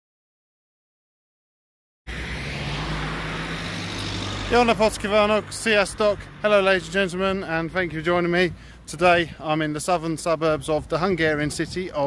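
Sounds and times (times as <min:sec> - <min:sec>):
car driving past: 0:02.1 - 0:07.8.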